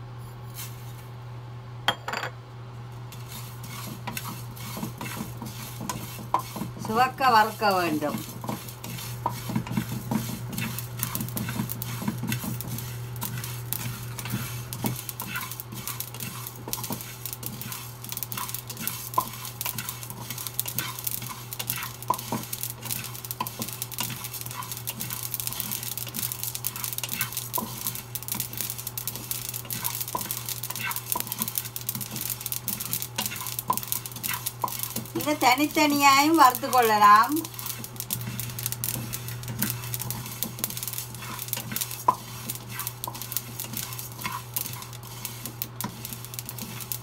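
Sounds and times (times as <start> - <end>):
spatula scraping seeds in a pan: 0.6 - 0.9, 3.1 - 47.0
seeds crackling: 3.1 - 47.0.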